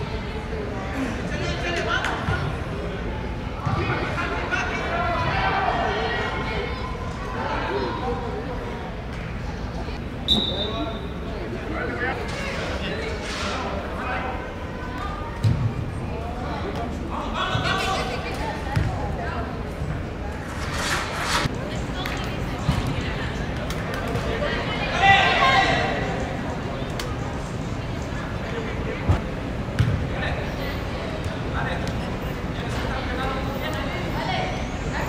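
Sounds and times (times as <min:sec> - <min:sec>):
low rumble of large hall: 0:00.0 - 0:35.0
players' voices: 0:00.0 - 0:35.0.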